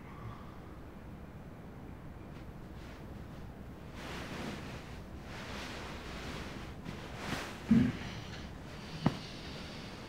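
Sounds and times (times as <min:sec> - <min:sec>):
bedding and clothes rustling: 0:02.3 - 0:10.0.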